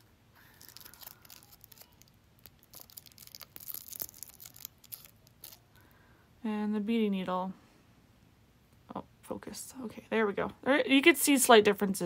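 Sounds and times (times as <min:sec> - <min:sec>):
packet crinkling and clicking: 0:00.0 - 0:05.7.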